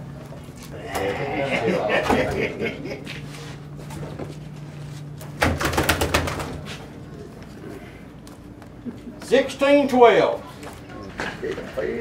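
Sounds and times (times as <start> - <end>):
steady low hum: 0.0 - 12.0
plastic basket knocking and rattling: 5.4 - 6.6.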